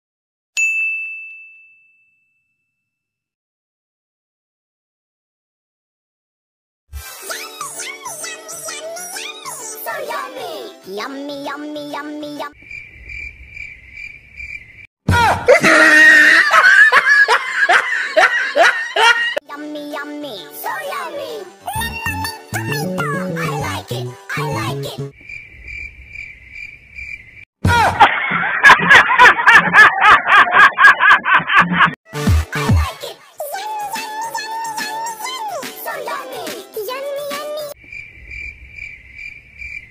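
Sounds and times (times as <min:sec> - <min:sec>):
bright ding: 0:00.6 - 0:02.9
children's pop singing: 0:07.3 - 0:12.5, 0:19.5 - 0:25.1, 0:32.3 - 0:37.8
cricket chirping sound effect: 0:12.6 - 0:14.9, 0:21.8 - 0:27.5, 0:37.8 - 0:39.9.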